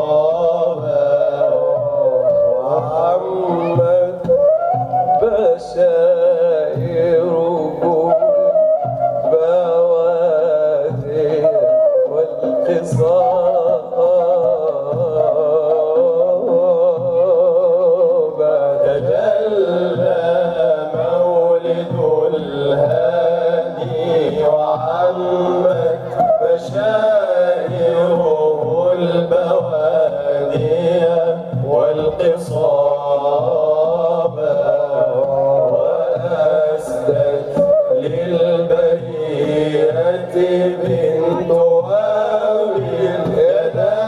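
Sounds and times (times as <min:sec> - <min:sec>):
men chanting a devotional song: 0:00.0 - 0:44.0
musical accompaniment: 0:00.0 - 0:44.0.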